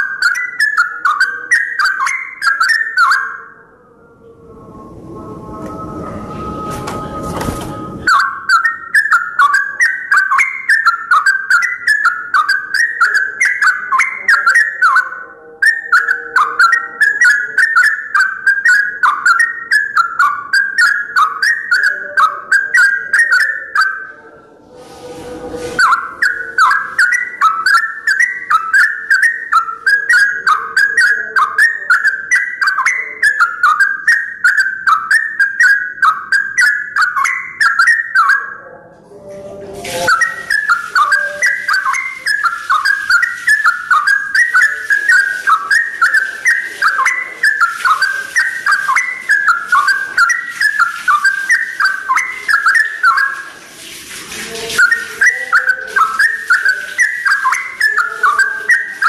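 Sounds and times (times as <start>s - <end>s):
bird singing bubbling whistles: 0.0s - 3.6s, 8.0s - 24.1s, 25.8s - 38.8s, 39.9s - 53.6s, 54.4s - 59.0s.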